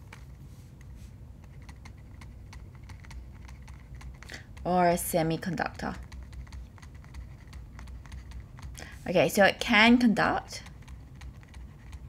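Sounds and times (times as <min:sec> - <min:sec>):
steady low hum: 0:00.0 - 0:12.0
stylus tapping on tablet screen: 0:00.8 - 0:09.0.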